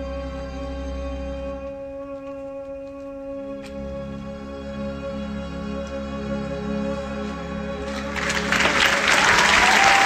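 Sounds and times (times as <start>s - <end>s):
audience applause: 7.9s - 10.0s.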